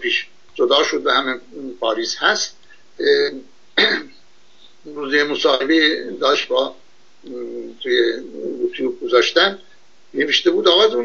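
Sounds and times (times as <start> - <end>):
man speaking: 0.0 - 4.2, 4.9 - 11.0
man clearing throat: 3.8 - 4.2.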